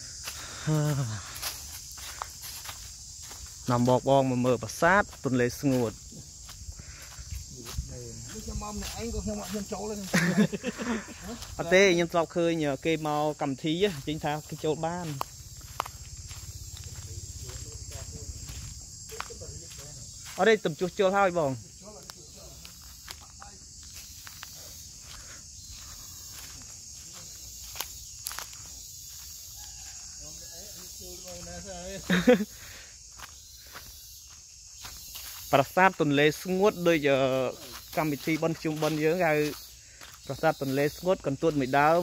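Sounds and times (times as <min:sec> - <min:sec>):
footsteps on a dirt path: 0:00.0 - 0:42.0
insects buzzing: 0:00.0 - 0:42.0.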